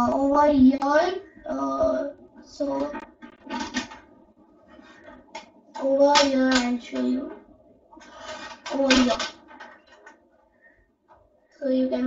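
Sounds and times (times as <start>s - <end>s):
child speaking: 0.0s - 3.0s, 5.8s - 7.4s, 8.7s - 9.3s, 11.6s - 12.0s.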